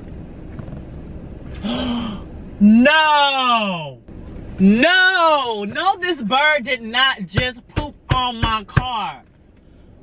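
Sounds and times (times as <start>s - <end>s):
low steady rumble: 0.0s - 10.0s
man gasping: 1.6s - 2.3s.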